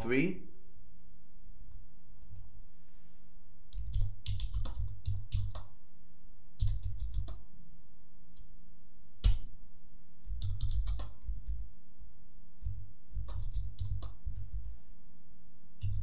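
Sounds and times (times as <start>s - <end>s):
computer keyboard typing: 3.7s - 5.8s, 6.6s - 7.5s, 10.3s - 11.6s, 12.6s - 14.7s, 15.8s - 16.0s.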